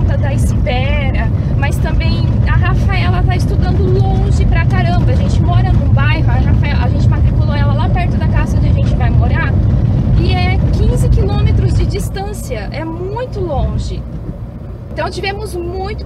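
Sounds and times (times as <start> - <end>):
woman talking: 0.0 - 14.1, 14.9 - 16.0
car engine and road noise: 0.0 - 16.0.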